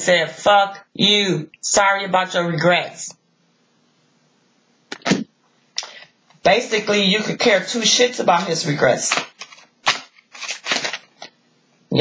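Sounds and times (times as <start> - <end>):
cards rustling: 8.4 - 11.4.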